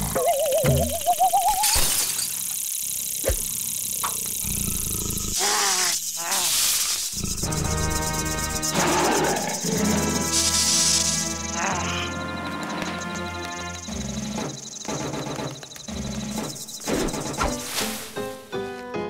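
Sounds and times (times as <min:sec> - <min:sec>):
cartoon character wordless vocals: 0:05.4 - 0:06.5
cartoon background music: 0:07.4 - 0:19.0.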